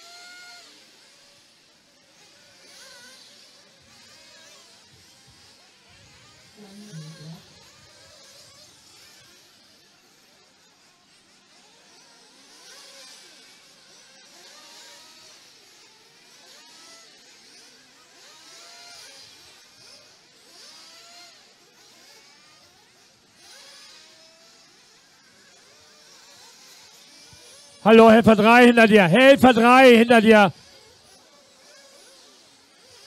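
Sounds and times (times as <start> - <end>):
rc car motors whining: 0.0 - 27.8, 30.6 - 33.0
loud voice calling out: 27.8 - 30.5.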